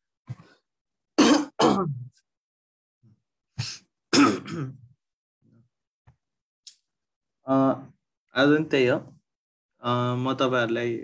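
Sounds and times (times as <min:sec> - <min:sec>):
person coughing: 0:01.2 - 0:02.1, 0:04.1 - 0:04.9.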